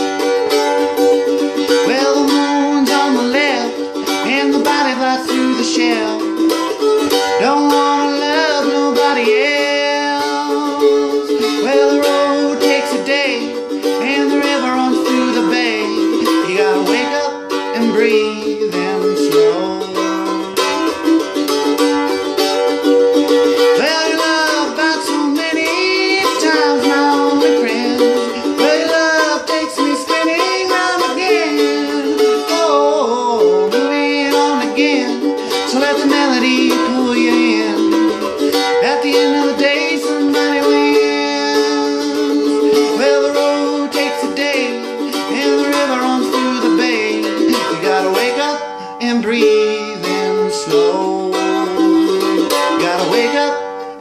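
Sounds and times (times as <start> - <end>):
man singing with vibrato: 0.0 - 54.0
mandolin strumming: 0.0 - 54.0.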